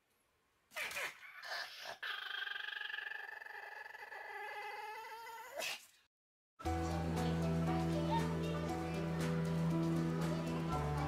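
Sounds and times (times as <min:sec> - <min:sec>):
dog whining: 0:00.8 - 0:05.7.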